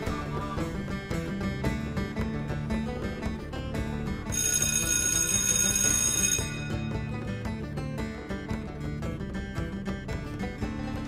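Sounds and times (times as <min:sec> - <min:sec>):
background music: 0:00.0 - 0:11.0
bell ringing: 0:04.3 - 0:07.3.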